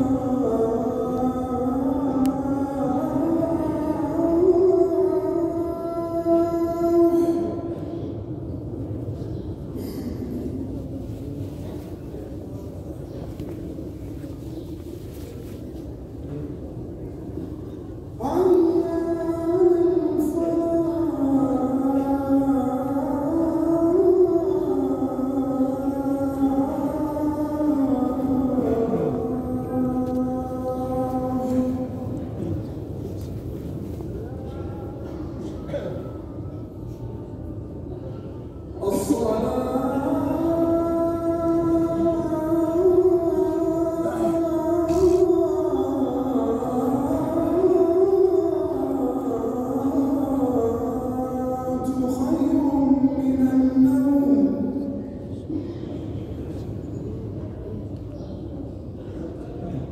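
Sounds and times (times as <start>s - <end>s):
man chanting call to prayer: 0.0s - 8.4s, 18.0s - 33.0s, 38.6s - 56.6s
crowd murmur echoing: 0.0s - 59.9s.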